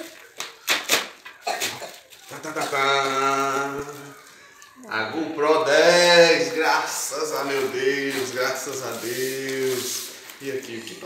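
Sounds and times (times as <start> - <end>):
plastic mailer bag crinkling: 0.0 - 4.8, 6.0 - 11.0.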